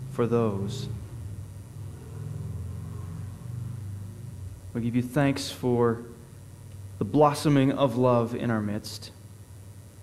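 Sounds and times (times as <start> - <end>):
low rumbling drone: 0.0 - 7.0.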